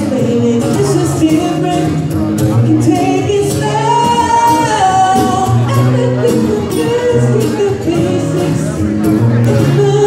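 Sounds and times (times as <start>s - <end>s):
acoustic guitar: 0.0s - 10.0s
man singing into a microphone: 0.0s - 10.0s.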